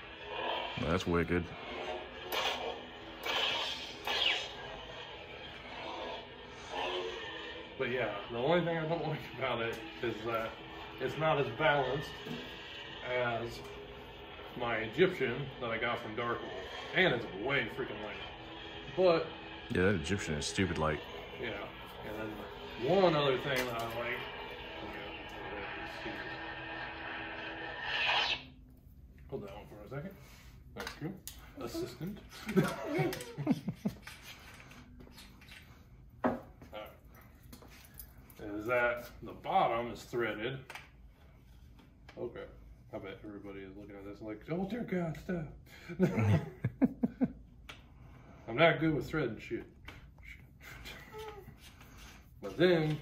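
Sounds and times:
lightsaber blade hum: 0:00.0 - 0:28.6.

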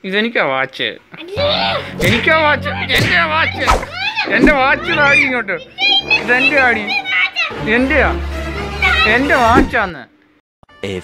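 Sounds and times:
girl talking and laughing: 0:01.1 - 0:02.0.

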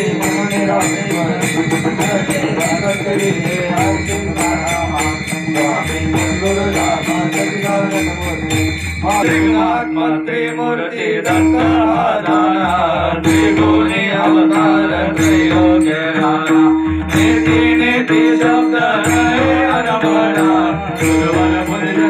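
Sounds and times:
small hand cymbals: 0:00.0 - 0:09.8
men singing devotional chant: 0:00.0 - 0:22.0.

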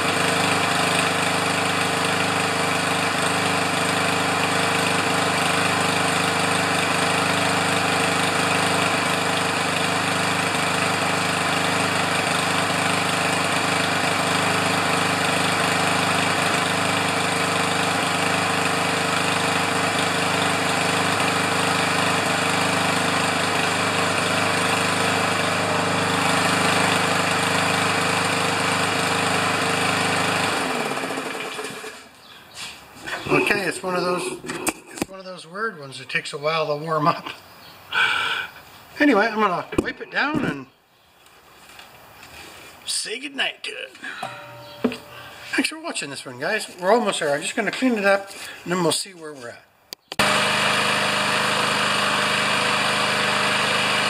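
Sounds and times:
lawn mower engine running: 0:00.0 - 0:35.1, 0:37.9 - 0:40.6, 0:44.0 - 0:49.4, 0:50.1 - 0:54.0.

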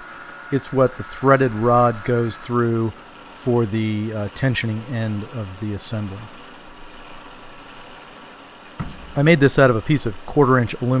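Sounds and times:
milling machine humming: 0:00.0 - 0:11.0.

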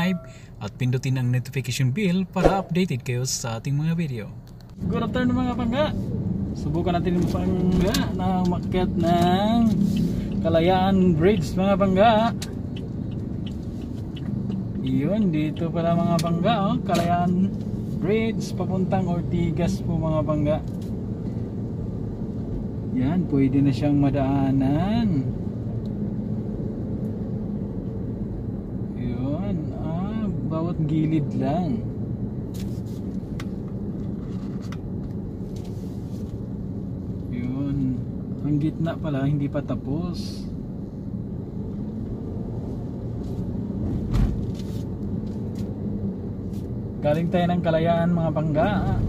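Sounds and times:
road noise: 0:00.0 - 0:49.0
vehicle engine rumble: 0:00.0 - 0:49.0
vehicle bump: 0:43.8 - 0:44.8.

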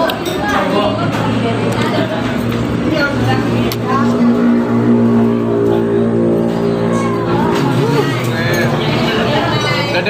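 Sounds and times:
vehicle engine running: 0:01.0 - 0:10.0.

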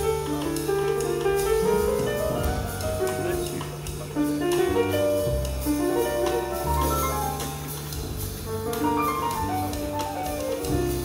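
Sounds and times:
double bass: 0:00.0 - 0:11.0
piano notes: 0:00.0 - 0:11.0.

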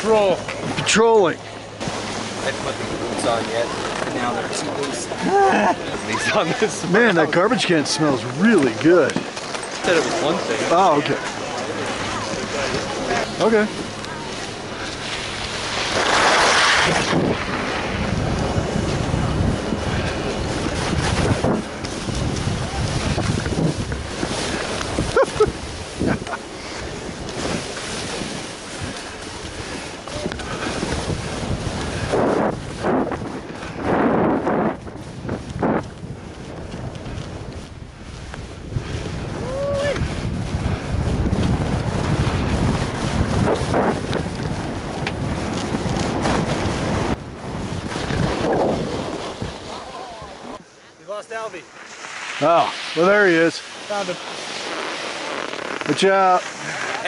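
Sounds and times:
wind on microphone: 0:00.0 - 0:50.7
skis scraping through snow: 0:01.8 - 0:57.0.

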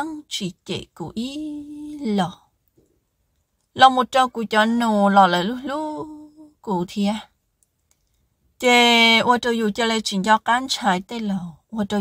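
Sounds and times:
person narrating: 0:00.0 - 0:02.4, 0:03.8 - 0:07.2.

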